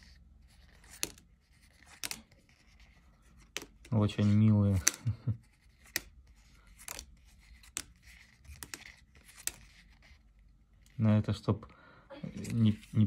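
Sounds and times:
paper rustling: 0.0 - 10.4
card flicking: 0.8 - 1.3.

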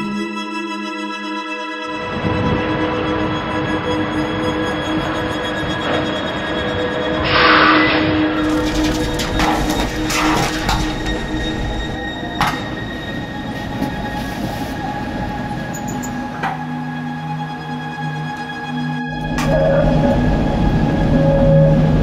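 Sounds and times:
background music: 0.0 - 22.0
tram wheels squealing and rumbling: 1.9 - 22.0.

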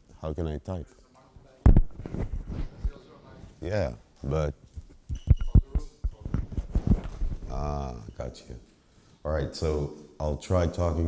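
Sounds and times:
microphone handling thumps: 1.6 - 3.0, 4.8 - 7.6.

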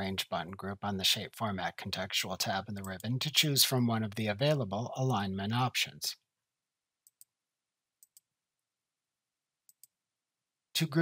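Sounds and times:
computer mouse clicks: 8.0 - 8.3, 9.7 - 10.0.

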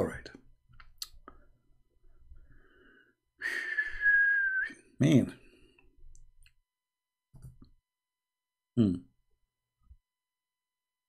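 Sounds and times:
person whistling held note: 3.4 - 4.8.

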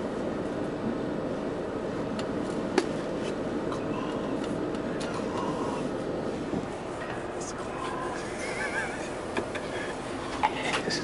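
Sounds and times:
coach diesel engine drone: 0.0 - 11.0.

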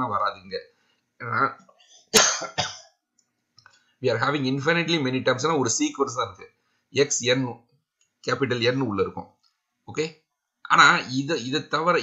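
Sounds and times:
person clearing throat: 2.2 - 2.9
person coughing: 2.2 - 3.0.

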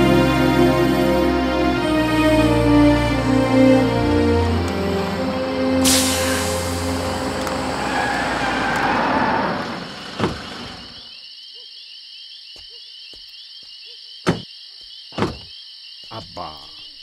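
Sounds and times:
low soundtrack drone: 0.0 - 11.0
crickets chirping: 3.8 - 17.0
frogs croaking: 9.0 - 17.0
car door clunking open: 10.2 - 10.5.

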